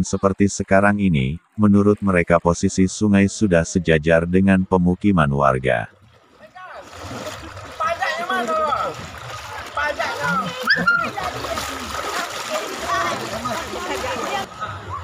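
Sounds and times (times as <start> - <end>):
water splashing: 5.7 - 15.0
children calling and chattering: 6.6 - 15.0.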